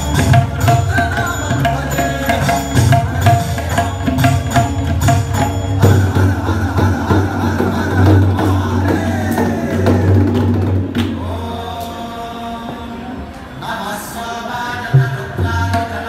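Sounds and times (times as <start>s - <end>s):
tabla strokes: 0.0s - 12.0s.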